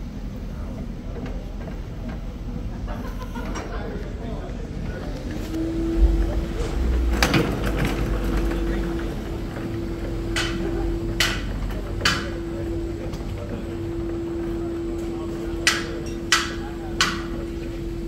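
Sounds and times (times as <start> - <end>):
background voices: 5.2 - 13.7
steady droning tone: 5.5 - 18.0
low rumble: 5.6 - 11.1.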